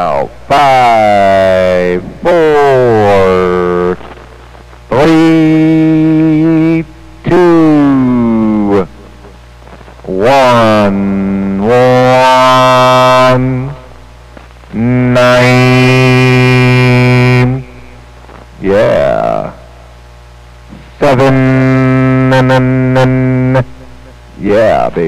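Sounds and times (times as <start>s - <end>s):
man singing vowels over radio: 0.0s - 19.7s, 20.7s - 25.0s.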